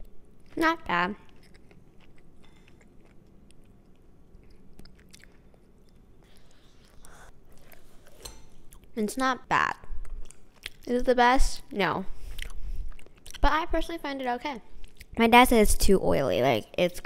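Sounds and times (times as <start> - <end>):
quiet chewing: 1.2 - 8.9.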